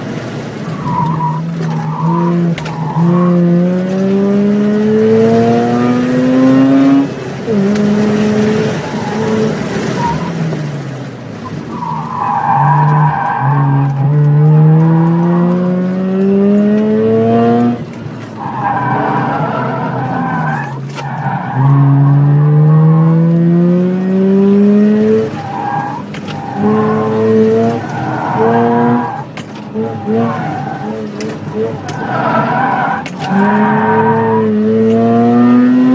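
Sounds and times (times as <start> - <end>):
tires squealing: 0.0 - 23.5, 24.1 - 35.9
car engine revving: 0.0 - 35.9.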